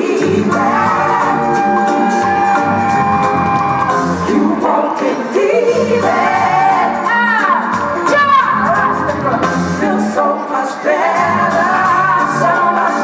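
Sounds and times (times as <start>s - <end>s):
lead singer singing: 0.0s - 13.0s
live band playing soul music: 0.0s - 13.0s.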